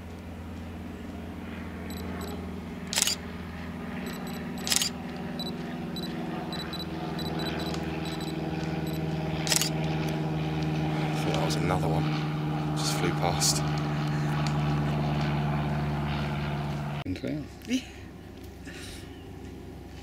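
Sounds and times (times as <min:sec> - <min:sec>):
low engine drone: 0:00.0 - 0:17.1
faint short beeps: 0:01.9 - 0:02.3, 0:04.1 - 0:08.3
camera shutter: 0:02.9 - 0:03.2, 0:04.1 - 0:08.3, 0:08.9 - 0:09.7.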